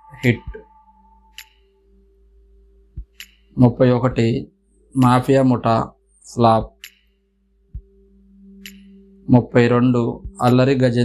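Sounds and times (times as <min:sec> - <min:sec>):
faint steady hum of held tones: 0:00.0 - 0:11.0
faint tick: 0:01.3 - 0:01.7, 0:03.0 - 0:03.6, 0:06.8 - 0:07.2, 0:08.6 - 0:09.1.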